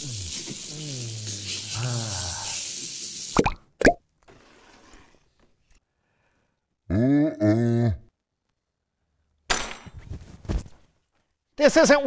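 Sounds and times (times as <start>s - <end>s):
man making wavering sounds: 0.0s - 2.6s
steady hiss: 0.0s - 3.4s.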